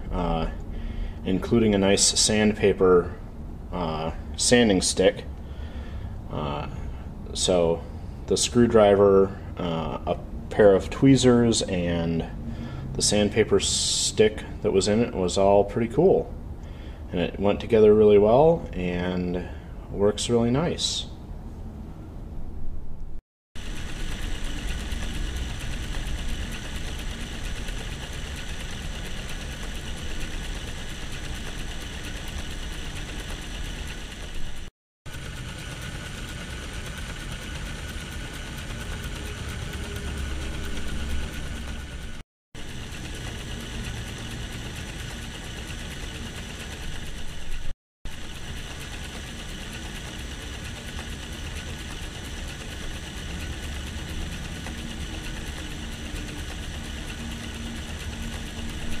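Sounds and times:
gear train whirring: 0:23.6 - 0:59.0
small electric motor running: 0:23.6 - 0:59.0.

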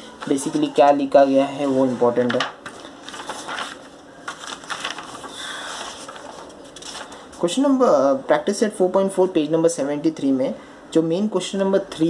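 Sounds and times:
paper pages rustling: 0:00.2 - 0:07.5.

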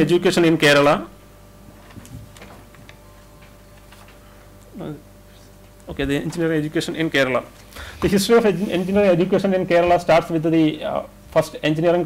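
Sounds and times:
low electrical hum: 0:00.0 - 0:12.0
paper sheets rustling: 0:03.8 - 0:04.2
man saying uh: 0:08.0 - 0:12.0.

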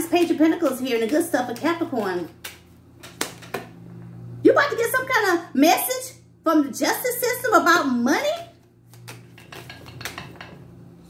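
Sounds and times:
cards being shuffled: 0:00.6 - 0:03.7, 0:08.6 - 0:10.2.

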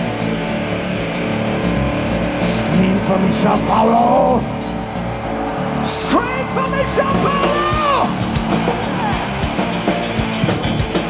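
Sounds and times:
bass guitar: 0:00.0 - 0:11.0
distorted electric guitar: 0:00.0 - 0:11.0
drums: 0:00.0 - 0:11.0.

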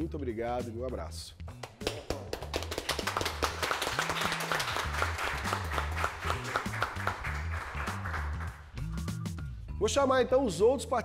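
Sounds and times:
background music with bass line: 0:00.0 - 0:11.0
people clapping: 0:01.5 - 0:09.2.

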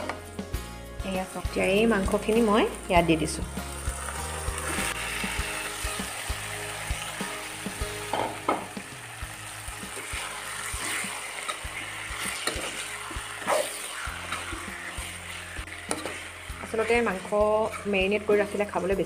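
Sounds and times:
meat sizzling in hot oil: 0:00.0 - 0:19.0
metal spatula scraping pan: 0:10.0 - 0:18.8.

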